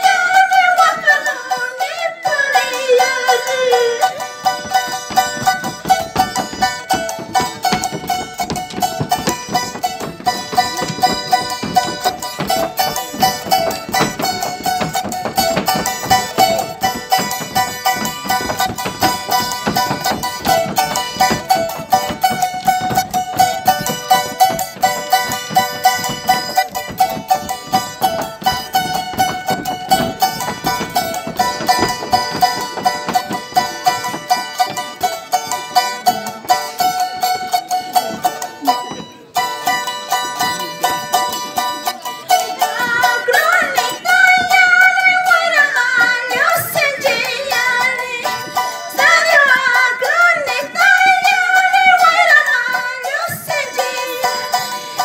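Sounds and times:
charango strumming: 0.0s - 55.0s
high melody line: 0.0s - 55.0s.

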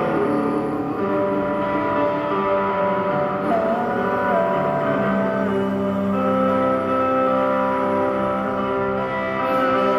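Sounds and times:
electric guitar drone: 0.0s - 9.9s
sliding wavering guitar note: 0.0s - 9.9s.

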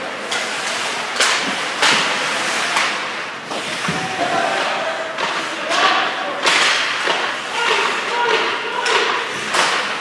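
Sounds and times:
hockey sticks and puck cracking: 0.0s - 10.0s.

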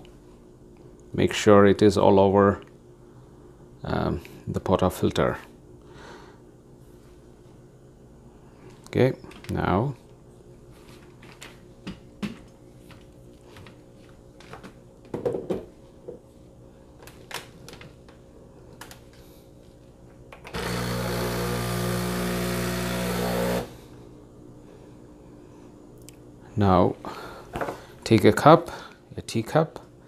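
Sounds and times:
espresso machine motor humming: 20.5s - 23.9s.

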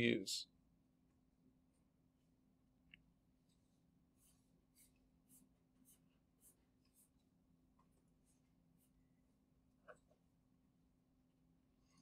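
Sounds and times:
stylus scratching on tablet: 3.4s - 9.2s.

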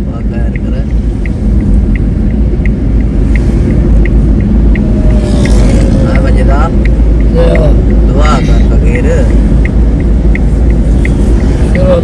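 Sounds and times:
car road noise and engine: 0.0s - 12.0s
steady ticking: 0.0s - 12.0s.

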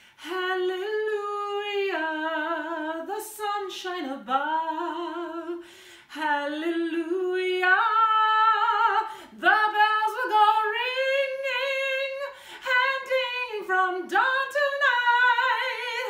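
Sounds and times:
woman singing unaccompanied: 0.2s - 16.0s.

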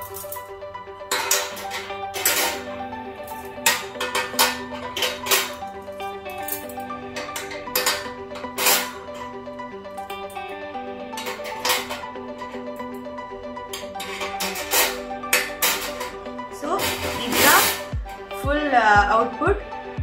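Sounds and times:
plucked-string background music: 0.0s - 20.0s.

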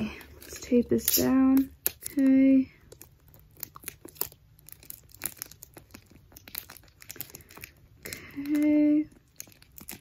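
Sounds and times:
paper and tape crinkling: 0.0s - 10.0s.

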